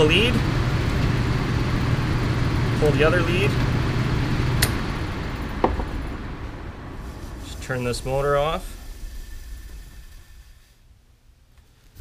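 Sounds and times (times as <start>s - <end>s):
blower motor coasting down: 0.0s - 10.9s.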